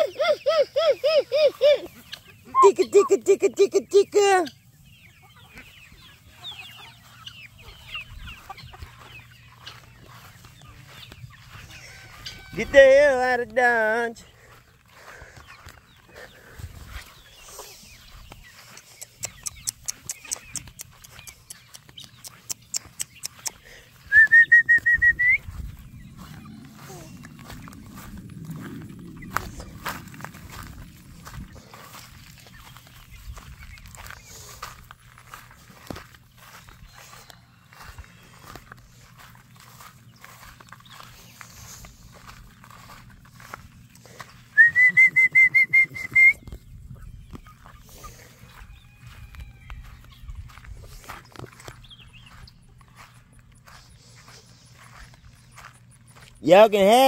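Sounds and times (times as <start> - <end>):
loud trilled whistle: 24.1 - 25.4, 44.6 - 46.4.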